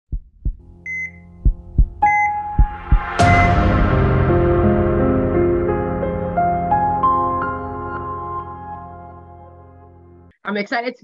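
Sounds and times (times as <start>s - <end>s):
heartbeat thumps: 0.0s - 3.5s
ambient synth music: 0.6s - 10.3s
bright hit: 2.6s - 6.2s
short high monitor beeps: 3.3s - 3.5s.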